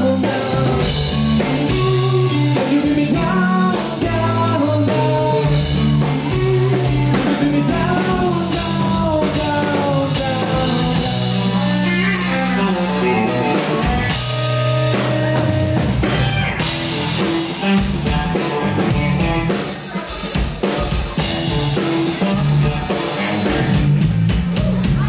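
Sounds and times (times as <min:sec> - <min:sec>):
rock band playing: 0:00.0 - 0:25.0.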